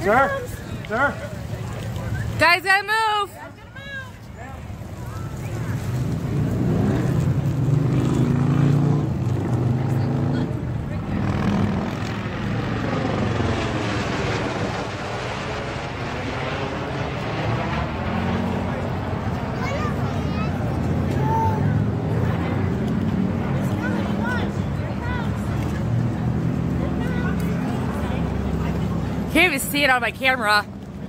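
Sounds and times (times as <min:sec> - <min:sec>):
helicopter flying overhead: 0:00.0 - 0:31.0.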